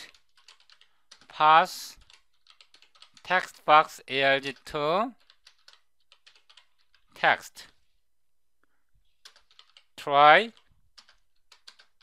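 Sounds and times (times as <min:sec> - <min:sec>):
faint keyboard clicks: 0:10.5 - 0:12.0.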